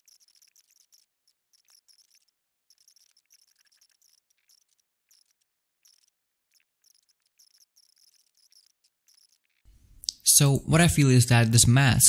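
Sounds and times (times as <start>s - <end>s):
faint high-pitched chirping: 0.0s - 9.6s.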